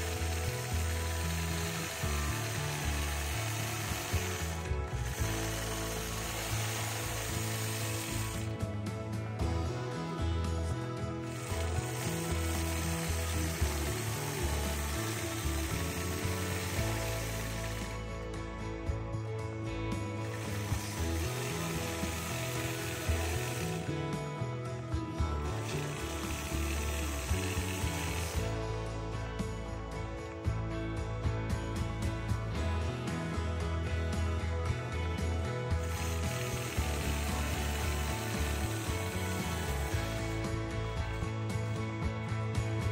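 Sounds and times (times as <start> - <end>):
background music with bass: 0.0 - 42.9.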